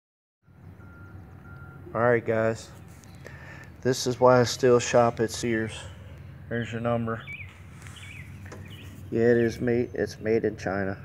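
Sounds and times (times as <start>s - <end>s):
short faint beeps: 0.4s - 1.9s
man speaking: 1.9s - 2.8s, 3.8s - 7.3s, 9.1s - 11.0s.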